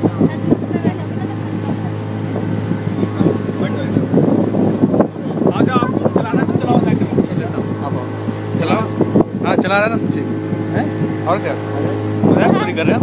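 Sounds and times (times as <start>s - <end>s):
motorboat engine humming: 0.0s - 13.0s
wind buffeting microphone: 0.0s - 13.0s.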